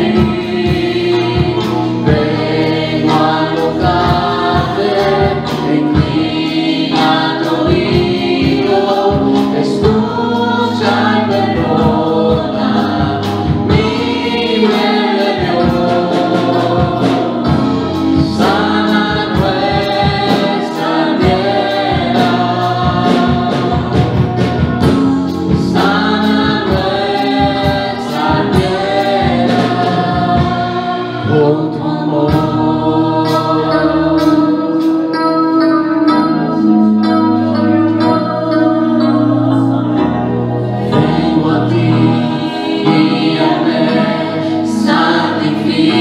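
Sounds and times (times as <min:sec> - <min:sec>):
women singing gospel song: 0:00.0 - 0:35.3, 0:38.0 - 0:46.0
steady percussive beat: 0:00.0 - 0:35.4, 0:40.2 - 0:46.0
instrumental accompaniment: 0:00.0 - 0:46.0.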